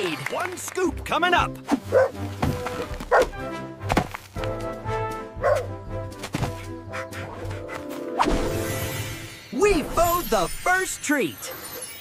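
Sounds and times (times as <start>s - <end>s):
background music: 0.0s - 12.0s
spade digging thunks: 2.3s - 4.3s.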